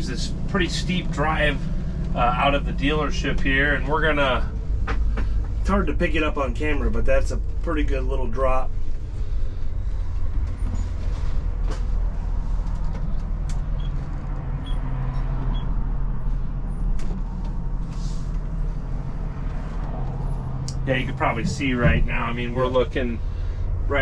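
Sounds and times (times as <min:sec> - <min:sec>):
diesel engine droning: 0:00.0 - 0:24.0
vehicle body clicks and creaks: 0:01.6 - 0:02.2, 0:03.2 - 0:07.7, 0:08.4 - 0:23.0.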